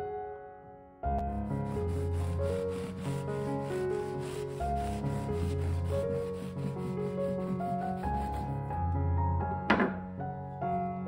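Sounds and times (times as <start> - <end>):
background music: 0.0 - 11.0
knife sawing through bread bun: 1.6 - 8.6.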